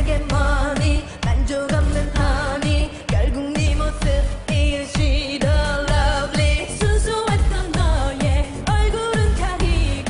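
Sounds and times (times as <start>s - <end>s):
female voices singing over a beat: 0.0s - 10.0s.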